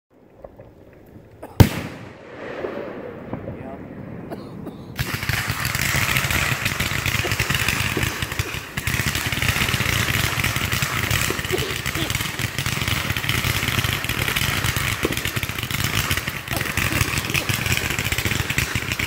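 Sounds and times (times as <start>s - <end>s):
fireworks launching and crackling: 0.2s - 19.0s.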